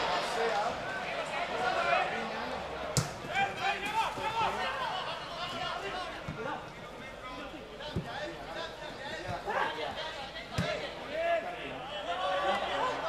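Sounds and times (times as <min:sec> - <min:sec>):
players and spectators shouting: 0:00.0 - 0:13.0.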